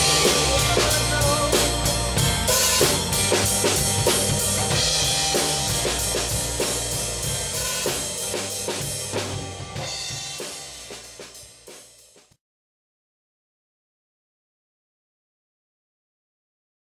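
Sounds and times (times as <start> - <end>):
pop-rock backing track: 0.0 - 12.2
drum kit playing: 0.0 - 12.4.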